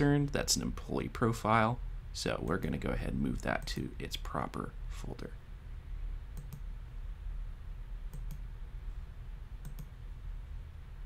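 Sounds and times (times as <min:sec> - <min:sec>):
computer mouse clicking: 0:06.3 - 0:06.7, 0:08.1 - 0:08.5, 0:09.6 - 0:10.0.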